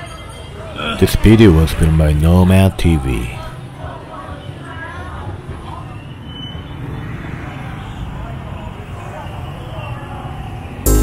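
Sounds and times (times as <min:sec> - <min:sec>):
motorbike traffic passing: 0:03.6 - 0:11.0.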